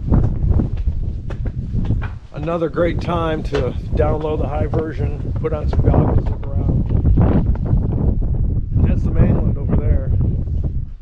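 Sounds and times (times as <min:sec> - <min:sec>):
footsteps on concrete steps: 0:00.0 - 0:08.2
wind buffeting microphone: 0:00.0 - 0:11.0.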